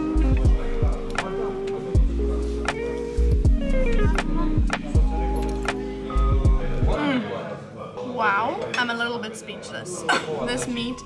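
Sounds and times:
music with steady beat: 0:00.0 - 0:07.0.

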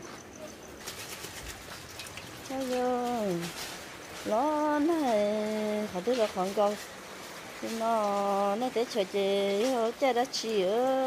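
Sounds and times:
rain pattering on umbrella: 0:00.8 - 0:11.0.

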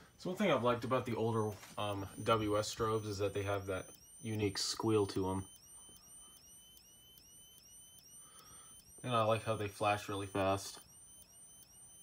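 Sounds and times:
high-pitched strobe squeal: 0:00.8 - 0:12.0.

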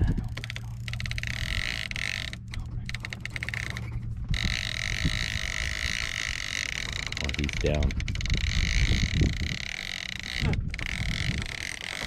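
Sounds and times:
boat engine droning: 0:00.0 - 0:12.0
fishing reel clicking fast: 0:00.0 - 0:12.0.

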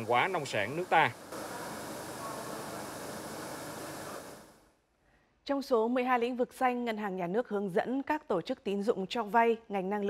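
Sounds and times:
conveyor machine hiss: 0:00.0 - 0:04.6.

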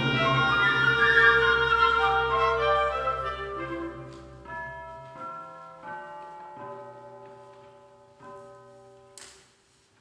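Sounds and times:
soft slow orchestra music: 0:00.0 - 0:10.0.

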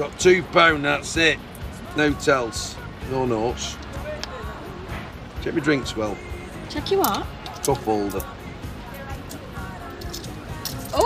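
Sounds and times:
faint voices: 0:00.0 - 0:11.0
quiet music: 0:00.0 - 0:11.0
coins clinking: 0:06.8 - 0:11.0.

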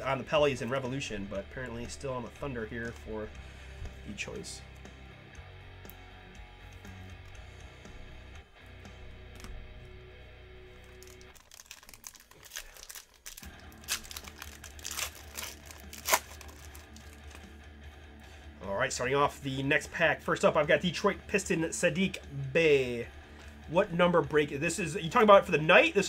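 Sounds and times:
quiet background music: 0:00.0 - 0:26.0
foil wrapper crinkling and tearing: 0:10.8 - 0:17.5.

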